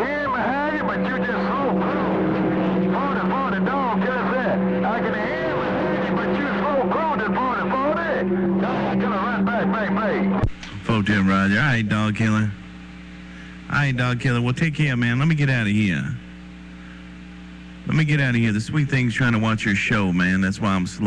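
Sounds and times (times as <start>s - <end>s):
garbled radio voice: 0.0s - 12.6s
humming tones: 0.0s - 19.5s.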